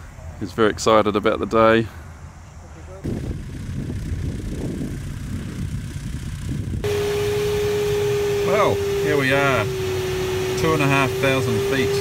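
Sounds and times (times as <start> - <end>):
cockpit airflow hiss: 6.8 - 12.0
held tone: 6.8 - 12.0.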